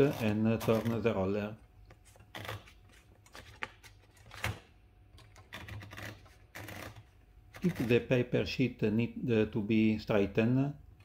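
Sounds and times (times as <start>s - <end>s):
typewriter roller clicks: 5.3s - 7.0s.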